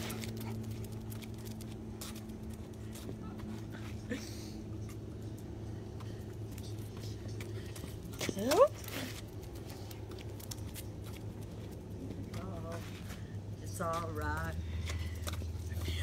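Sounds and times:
dog claws ticking on concrete: 0.0s - 3.5s, 4.8s - 12.9s
light footsteps: 0.0s - 16.0s
steady low hum: 0.0s - 16.0s.

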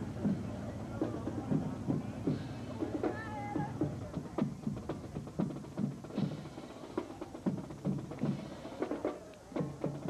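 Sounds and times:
marching band drums beating: 0.0s - 10.0s.

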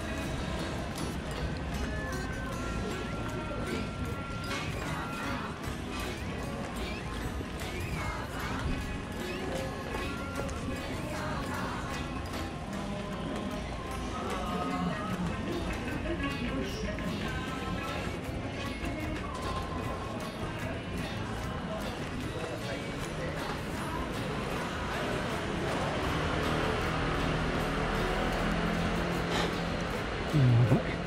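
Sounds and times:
indistinct voices: 0.0s - 31.0s
music playing: 0.0s - 31.0s.

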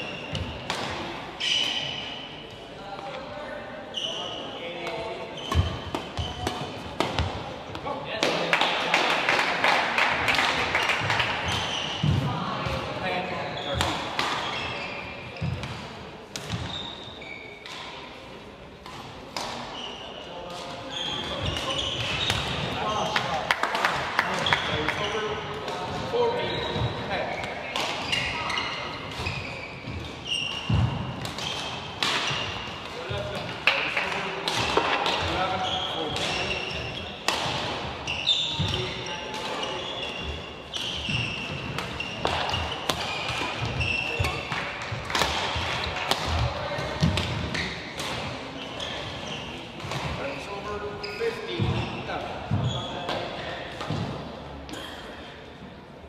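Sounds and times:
shoe squeaks: 0.0s - 0.7s, 1.4s - 2.5s, 3.9s - 6.8s, 11.4s - 12.1s, 13.4s - 15.6s, 16.5s - 17.8s, 19.6s - 23.1s, 24.4s - 25.4s, 26.2s - 33.2s, 35.2s - 37.3s, 38.0s - 44.6s, 46.6s - 47.9s, 48.5s - 53.1s
racket hitting shuttlecock: 0.3s - 1.1s, 5.5s - 7.4s, 13.8s - 14.6s, 18.8s - 19.8s, 27.4s - 28.3s, 29.0s - 35.4s, 36.1s - 37.9s, 38.6s - 48.4s.

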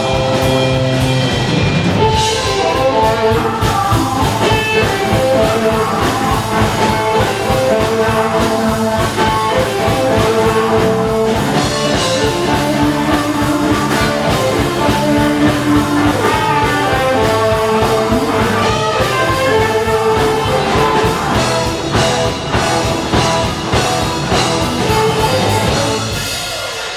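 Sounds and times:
electric bass: 0.0s - 26.4s
drum kit: 0.0s - 26.9s
electric guitar lead: 0.0s - 26.9s.

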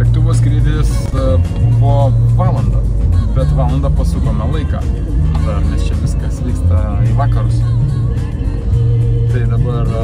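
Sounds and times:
car road noise: 0.0s - 10.0s
song on car stereo: 0.0s - 10.0s.

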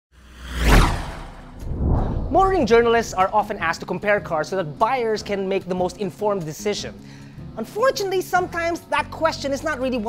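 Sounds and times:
whoosh with deep rumble: 0.2s - 3.6s.

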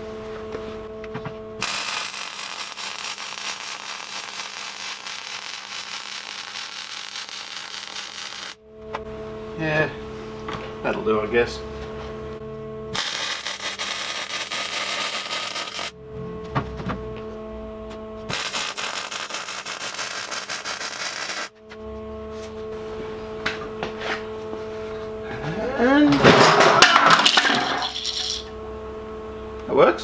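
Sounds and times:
electrical hum: 0.0s - 30.0s
loud burst of noise: 1.6s - 8.6s, 12.9s - 16.0s, 18.3s - 21.5s
welder crackling: 1.6s - 8.6s, 12.9s - 16.0s, 18.3s - 21.5s.

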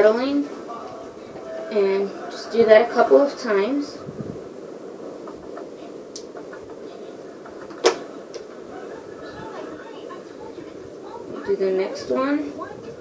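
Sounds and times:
low background noise: 0.0s - 13.0s.

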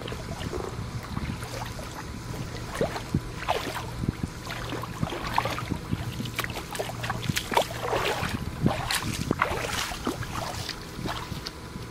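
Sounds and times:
feet wading through shallow water: 0.0s - 11.9s.

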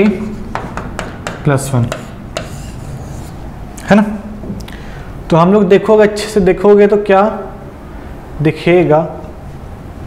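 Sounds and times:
pen scraping on board: 0.4s - 3.4s.

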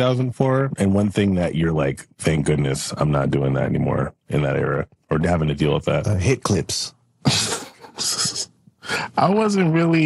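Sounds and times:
person laughing breathily: 7.2s - 9.1s.

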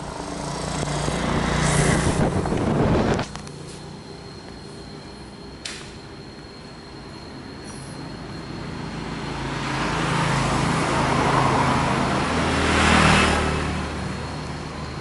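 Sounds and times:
motor vehicle passing by: 0.0s - 3.2s, 8.9s - 15.0s.

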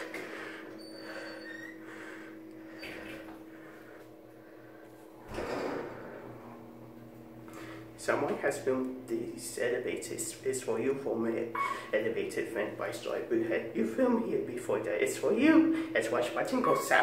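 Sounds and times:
elevator humming: 0.0s - 17.0s
elevator low rumble: 0.0s - 17.0s.

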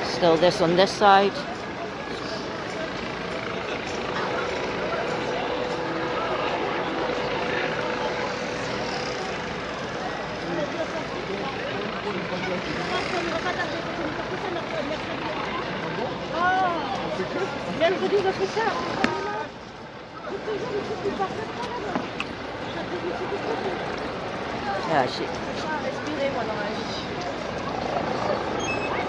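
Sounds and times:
distant voices: 0.0s - 29.0s
steady mechanical drone: 0.0s - 29.0s.

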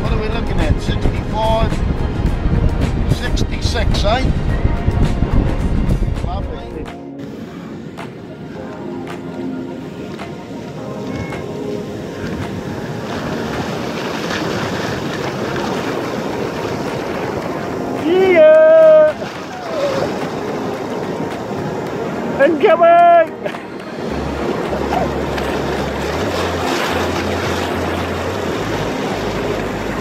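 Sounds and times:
wind on microphone: 0.0s - 9.1s, 9.8s - 22.4s
surf breaking on a beach: 7.2s - 30.0s.

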